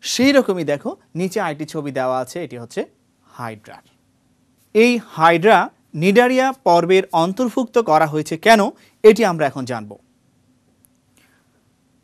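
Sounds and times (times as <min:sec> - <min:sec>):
faint hiss: 0:00.0 - 0:12.0
faint hum: 0:00.0 - 0:12.0.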